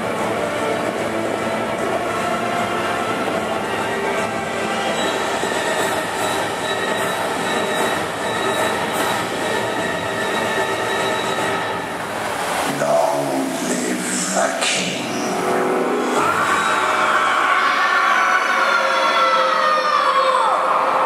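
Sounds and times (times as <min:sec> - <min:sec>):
spraying water rushing: 0:11.7 - 0:16.8.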